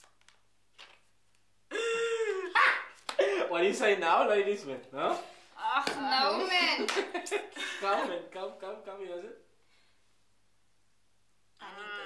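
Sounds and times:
person shouting: 2.0s - 3.0s.

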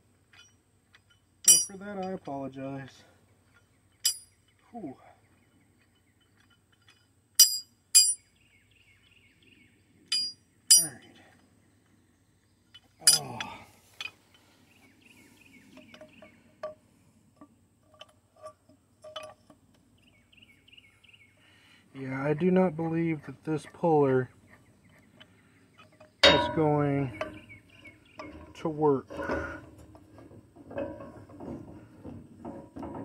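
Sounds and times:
metallic clinks of steel tools: 1.4s - 2.2s, 4.0s - 4.4s, 6.4s - 8.2s, 10.1s - 11.1s, 13.0s - 14.1s.

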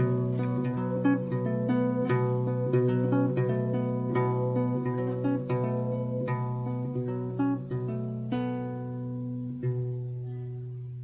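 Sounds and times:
plucked guitar folk melody: 0.0s - 11.0s.

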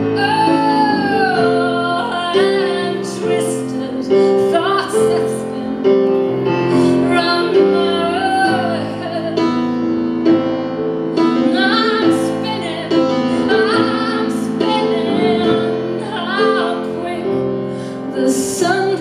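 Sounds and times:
woman singing: 0.0s - 10.4s, 11.1s - 19.0s
piano chords: 0.0s - 19.0s.

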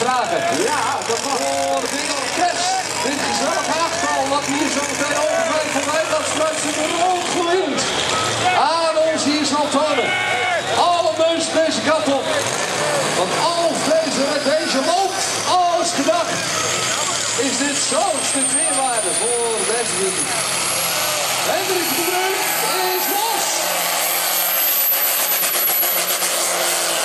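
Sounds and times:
tractor engines roaring: 0.0s - 27.0s
announcer over loudspeaker: 2.1s - 20.6s, 21.4s - 25.1s.

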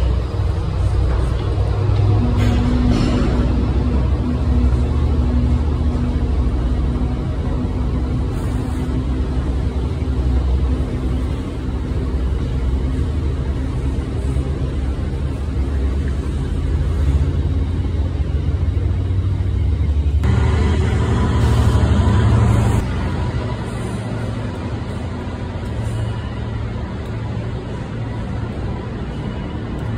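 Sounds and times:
train wheels rumbling on rails: 0.0s - 29.9s.

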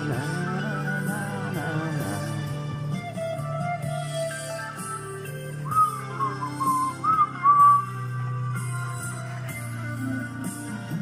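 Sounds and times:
backing track with guitar: 0.0s - 11.0s
man whistling a melody: 3.2s - 8.5s.

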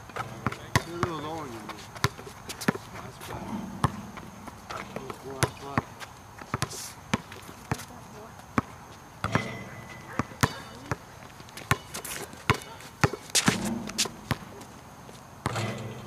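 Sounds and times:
basketball bouncing on hard court: 0.1s - 8.0s, 8.6s - 14.7s, 15.4s - 16.0s.

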